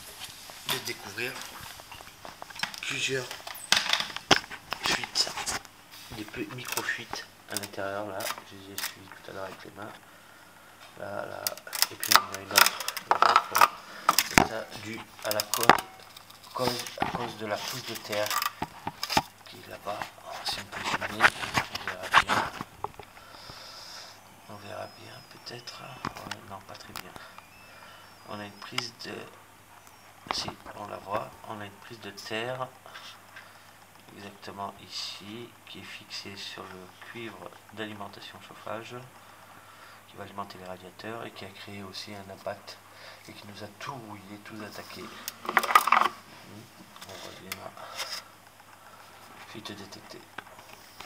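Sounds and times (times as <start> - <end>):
man talking: 0.6 - 1.7, 2.7 - 3.5, 4.8 - 10.0, 10.9 - 18.5, 19.4 - 22.7, 23.9 - 27.3, 28.2 - 29.4, 30.3 - 33.2, 34.1 - 39.2, 40.1 - 45.8, 46.4 - 48.1, 49.4 - 50.4
hard objects clattering: 0.6 - 5.6, 11.4 - 23.6, 44.9 - 48.3.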